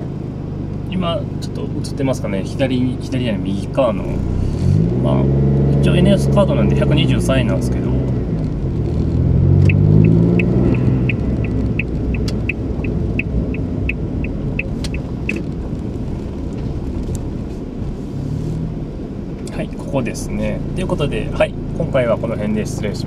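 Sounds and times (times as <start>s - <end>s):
road noise: 0.0s - 23.0s
car engine rising in pitch: 3.0s - 23.0s
turn indicator ticking: 4.8s - 17.5s.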